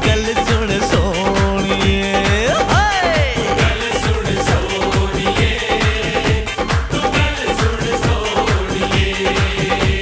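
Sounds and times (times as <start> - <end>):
low drum strokes dance beat: 0.0 - 10.0.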